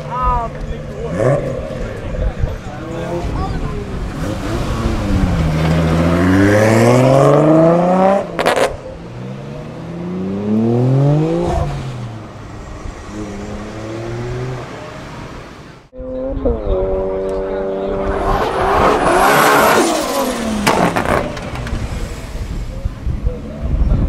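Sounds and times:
car engine accelerating: 0.0 - 23.8.

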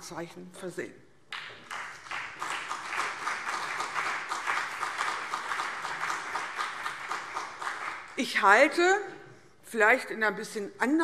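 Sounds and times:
crowd applause: 1.6 - 8.2.

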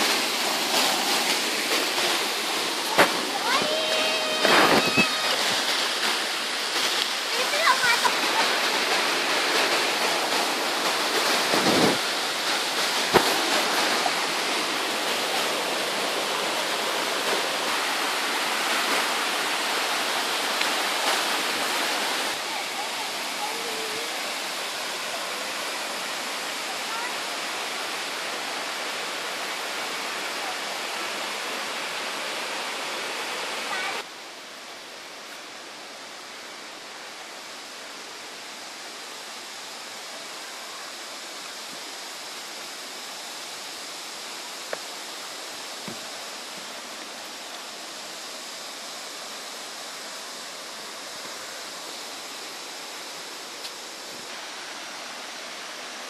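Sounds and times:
waterfall rushing: 0.0 - 56.0.

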